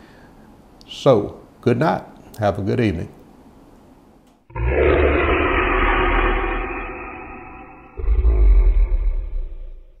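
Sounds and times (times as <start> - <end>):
deep rumbling roar: 4.5 - 10.0.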